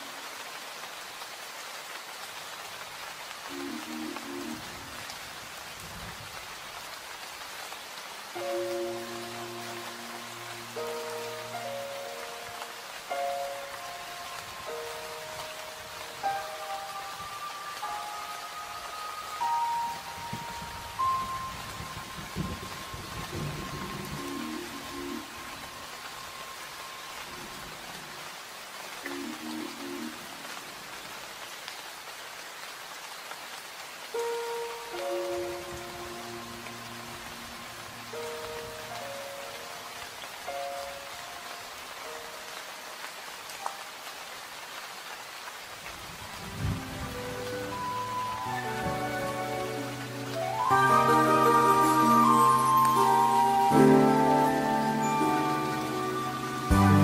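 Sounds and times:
steady rain falling: 0:00.0 - 0:57.0
soft background music: 0:03.5 - 0:05.1, 0:08.3 - 0:27.6, 0:34.1 - 0:44.0, 0:46.5 - 0:57.0.

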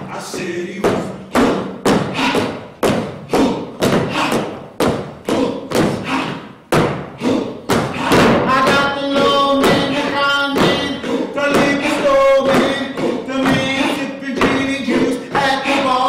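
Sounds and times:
heavy thuds in a steady beat: 0:00.0 - 0:16.0
voices singing held notes: 0:07.2 - 0:16.0.

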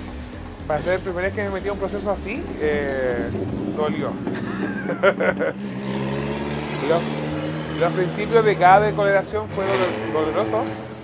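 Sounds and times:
vehicle engine humming: 0:00.0 - 0:11.0
man laughing: 0:02.7 - 0:06.1.

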